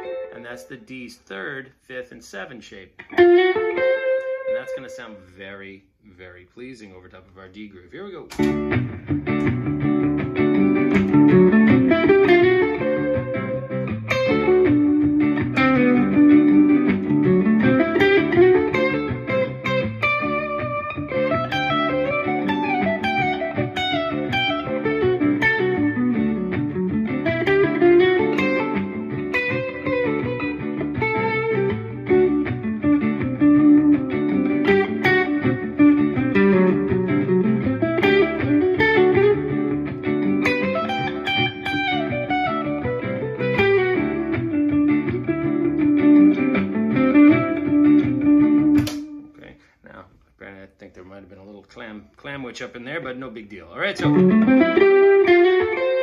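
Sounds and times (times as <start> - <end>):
electric guitar lead line: 0.0 - 0.8, 3.0 - 5.1, 8.3 - 49.3, 54.0 - 56.0.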